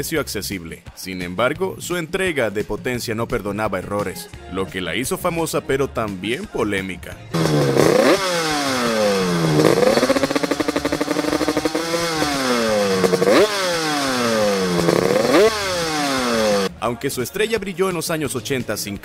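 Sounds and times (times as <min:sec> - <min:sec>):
motorcycle engine revving: 0:07.3 - 0:16.7.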